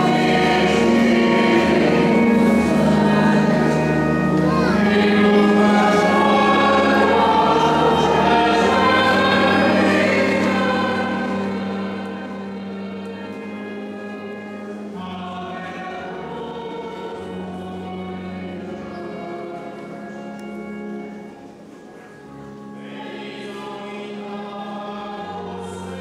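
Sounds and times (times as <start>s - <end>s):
choir singing slow music: 0.0s - 26.0s.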